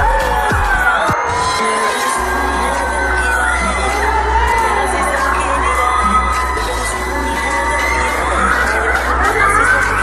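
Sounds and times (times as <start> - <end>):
bass backing track: 0.0 - 1.2, 2.2 - 10.0
crowd screaming and cheering: 0.0 - 10.0.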